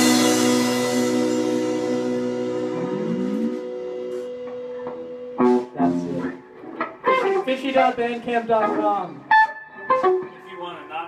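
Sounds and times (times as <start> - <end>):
electric guitar chord ringing: 0.0 - 7.4
low note sliding upward: 1.0 - 4.4.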